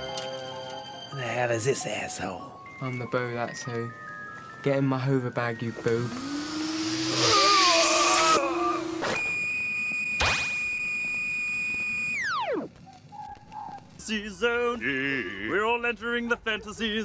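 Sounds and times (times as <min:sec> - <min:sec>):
high synthesized tone sliding down: 0:05.8 - 0:09.0, 0:12.0 - 0:12.7.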